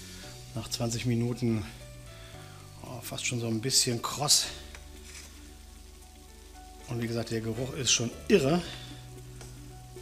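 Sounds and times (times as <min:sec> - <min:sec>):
chicken wings sizzling faintly: 0:00.0 - 0:10.0.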